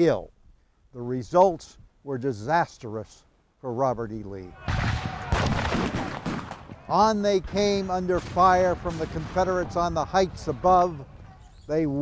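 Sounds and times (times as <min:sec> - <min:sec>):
massed gunfire: 0:04.6 - 0:10.8.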